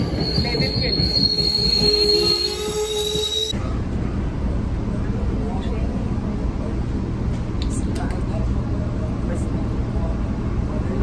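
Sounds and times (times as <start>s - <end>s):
train wheels squealing: 0.0s - 3.6s
train cars rumbling: 0.0s - 11.0s.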